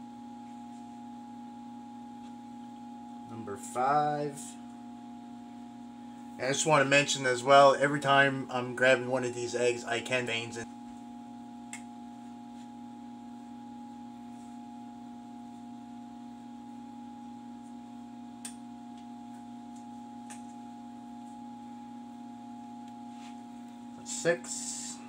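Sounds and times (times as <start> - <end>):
steady electrical hum: 0.0 - 25.0.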